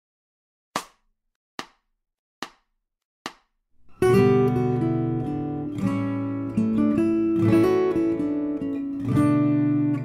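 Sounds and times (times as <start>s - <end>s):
acoustic guitar playing: 3.8s - 10.0s.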